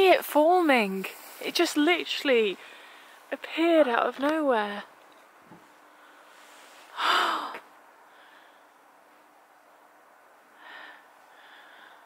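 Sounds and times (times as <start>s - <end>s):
person gasping: 7.0s - 7.6s.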